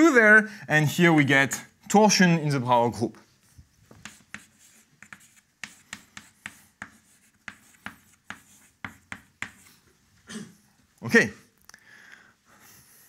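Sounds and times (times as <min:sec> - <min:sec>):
chalk tapping and scratching: 0:03.4 - 0:09.8.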